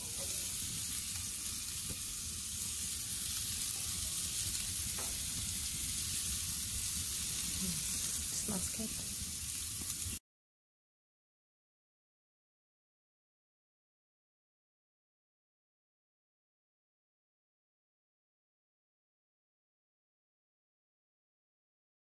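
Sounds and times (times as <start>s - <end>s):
steaks sizzling on a grill: 0.0s - 10.2s.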